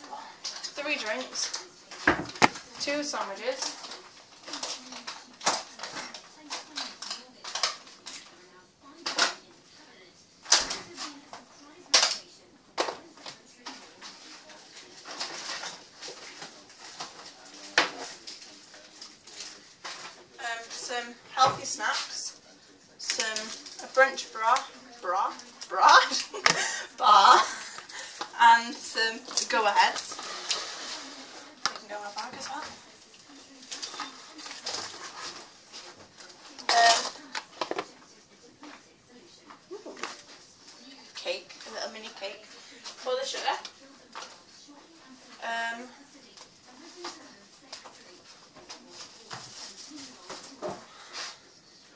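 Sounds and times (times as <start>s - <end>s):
hard objects knocking and clattering: 2.0s - 2.7s
rustling: 29.1s - 38.0s, 46.1s - 51.4s.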